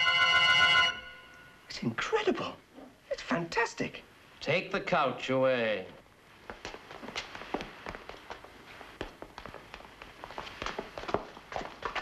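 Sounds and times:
footsteps on plank floor: 0:06.4 - 0:12.0.

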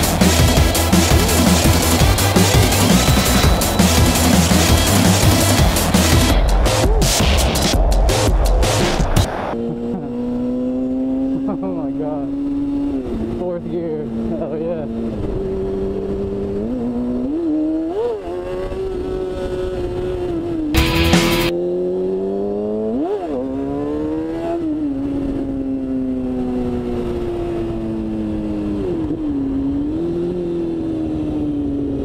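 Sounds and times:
loud rushing noise: 0:00.0 - 0:09.7, 0:20.8 - 0:21.5
motorcycle engine revving: 0:00.0 - 0:32.0.

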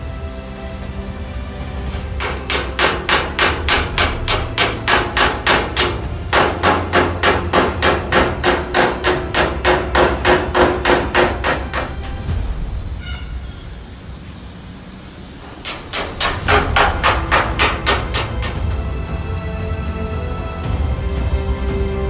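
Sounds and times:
hammer on sheet metal: 0:01.9 - 0:13.2, 0:15.4 - 0:18.8.

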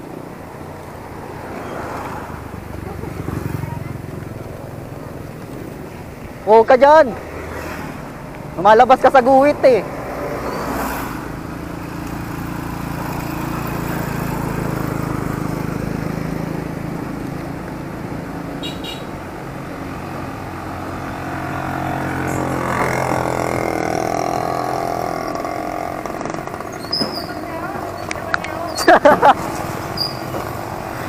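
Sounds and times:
vehicle engine and road noise: 0:00.0 - 0:31.0
vehicle passing: 0:00.0 - 0:31.0.

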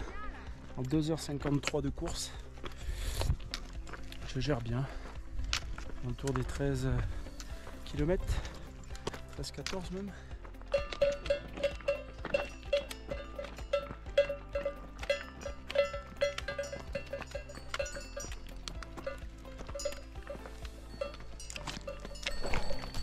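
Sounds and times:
sheep bells clanking: 0:03.9 - 0:23.0.

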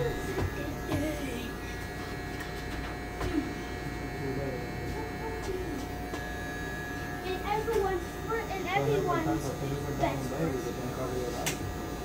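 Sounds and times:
electric hair clippers buzzing: 0:00.0 - 0:12.0.

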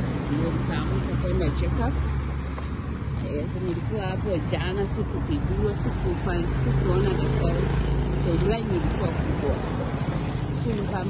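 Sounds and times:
indistinct voices talking: 0:00.0 - 0:11.0.

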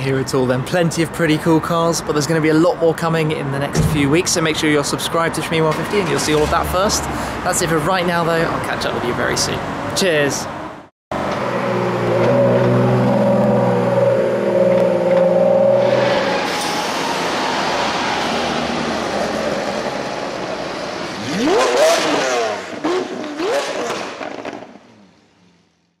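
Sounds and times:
car engine revving: 0:11.2 - 0:25.1.

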